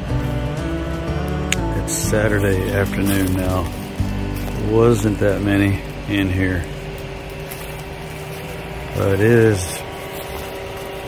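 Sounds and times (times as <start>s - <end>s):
steady tonal hum: 0.0s - 11.0s.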